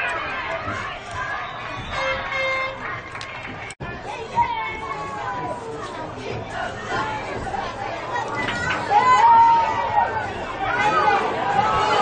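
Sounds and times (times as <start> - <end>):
crowd chatter and calls: 0.0 - 12.0.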